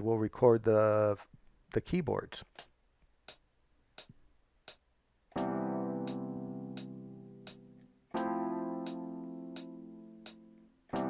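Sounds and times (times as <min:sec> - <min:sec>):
sustained keyboard chords: 0:05.3 - 0:11.0
metronome clicks: 0:06.1 - 0:11.0.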